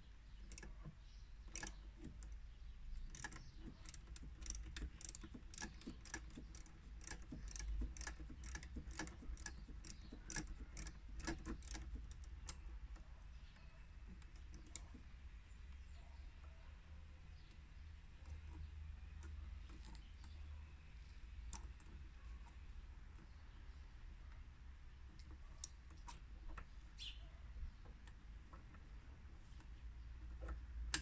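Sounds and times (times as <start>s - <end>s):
engine parts clicking when handled: 0.3s - 15.1s.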